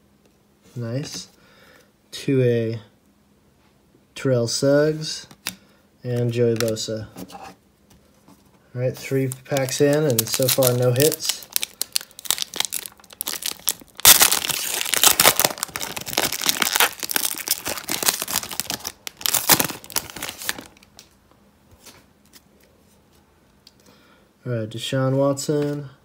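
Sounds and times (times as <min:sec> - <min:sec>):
foil wrapper tearing and crinkling: 0:09.2 - 0:20.9.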